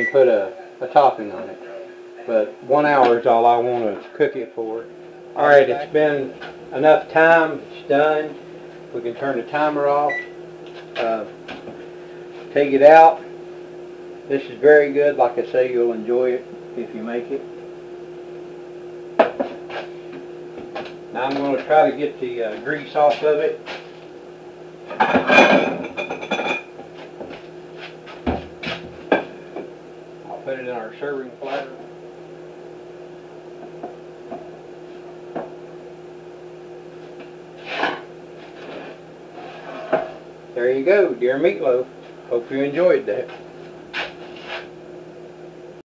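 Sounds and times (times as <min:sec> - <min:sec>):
steady hum: 0:00.0 - 0:45.8
pan scraping on stove: 0:38.6 - 0:40.3.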